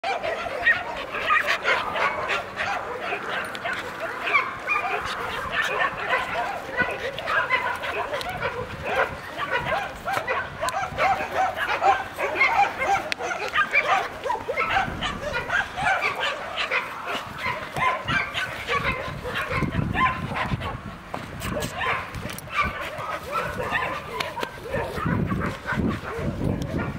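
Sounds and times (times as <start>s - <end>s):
young dog whining and yipping: 0.0s - 20.8s, 21.5s - 26.9s.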